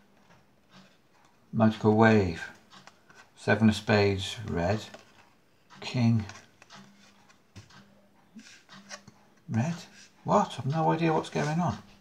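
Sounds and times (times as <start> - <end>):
playing cards sliding: 8.4 - 10.2.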